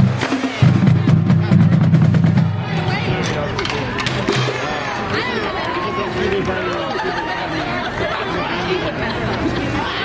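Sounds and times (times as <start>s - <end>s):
group chatter: 0.0s - 10.0s.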